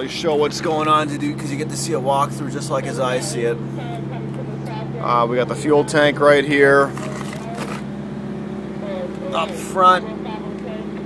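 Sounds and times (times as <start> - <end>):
refrigeration unit drone: 0.0 - 11.0.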